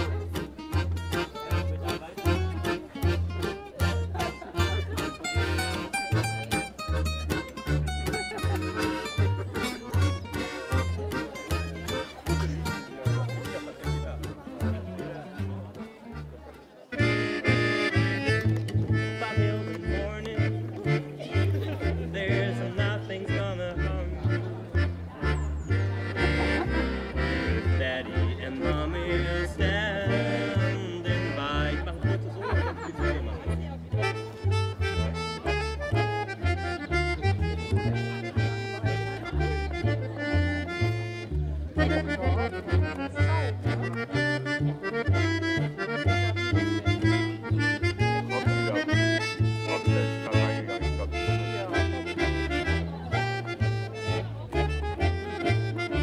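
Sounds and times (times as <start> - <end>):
accordion: 0.0 - 56.0
plucked upright double bass: 0.0 - 56.0.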